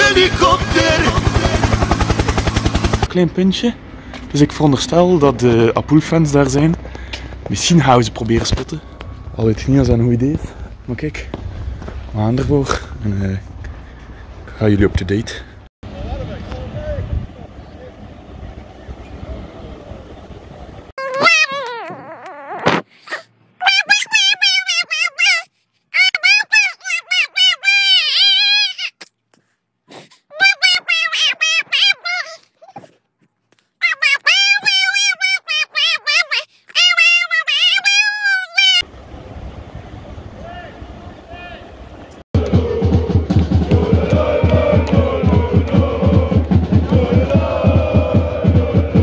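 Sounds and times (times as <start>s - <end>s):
steady low rumble: 0.0s - 3.1s, 41.7s - 49.0s
baby wailing: 21.0s - 29.0s, 30.3s - 32.4s, 33.8s - 38.8s
distant voice calling out: 40.3s - 43.2s.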